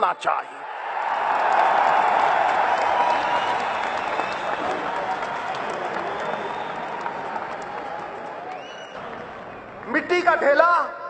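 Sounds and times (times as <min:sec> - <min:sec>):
large audience applauding: 0:00.8 - 0:10.3.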